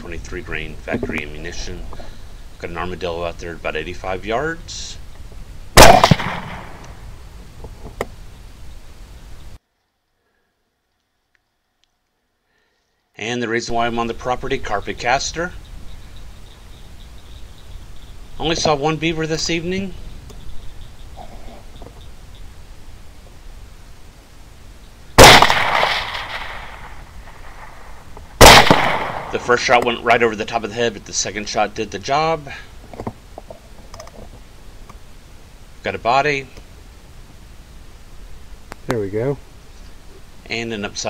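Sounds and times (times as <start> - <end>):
faint outdoor background: 0.0 - 41.0
suppressed rifle shot: 5.8 - 7.0, 25.2 - 29.5.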